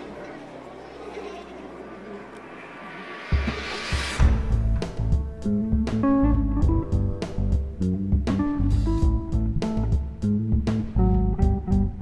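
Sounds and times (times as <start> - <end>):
steady rushing noise: 2.0 - 5.4.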